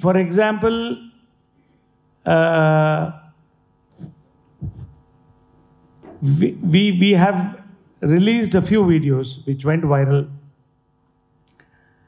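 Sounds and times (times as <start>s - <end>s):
sound system hum: 0.0s - 12.0s
thump on microphone: 4.6s - 5.0s.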